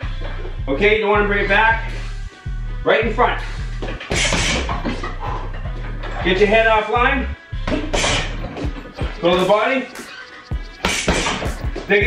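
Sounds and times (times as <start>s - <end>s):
background music: 0.0s - 12.0s
punches hitting heavy bag: 4.1s - 4.8s, 10.8s - 11.6s.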